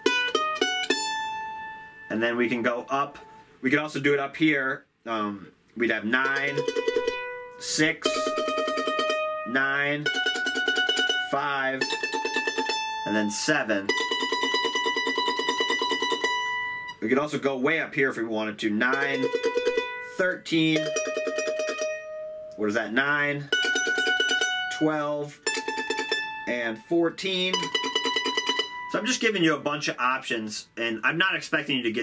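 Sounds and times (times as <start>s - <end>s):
mandolin picked notes: 0.0s - 4.3s, 5.4s - 29.8s.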